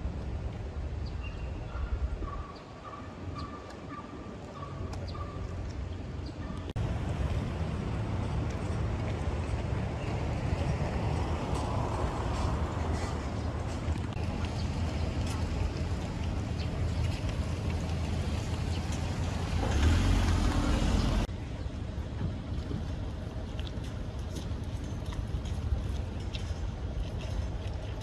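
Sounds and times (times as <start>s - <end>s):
low rumble of road traffic: 0.0s - 28.0s.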